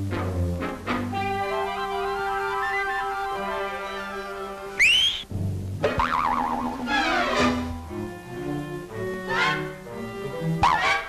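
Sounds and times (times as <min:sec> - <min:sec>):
cartoon orchestral music: 0:00.0 - 0:11.0
rising whistle glide: 0:04.8 - 0:05.3
wobbling wavering tone: 0:06.0 - 0:07.0.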